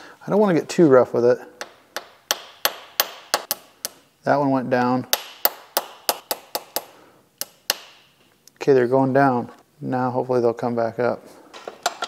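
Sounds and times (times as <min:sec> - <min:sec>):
hammer tapping metal: 0:01.6 - 0:04.0, 0:05.1 - 0:08.0.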